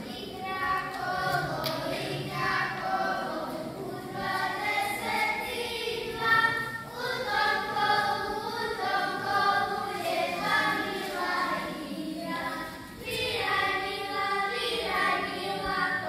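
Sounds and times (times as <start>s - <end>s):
children singing folk song: 0.0s - 16.0s.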